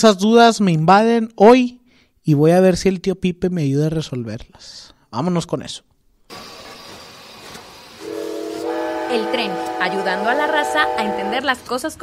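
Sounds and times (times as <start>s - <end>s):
train whistle chord: 8.0s - 11.6s.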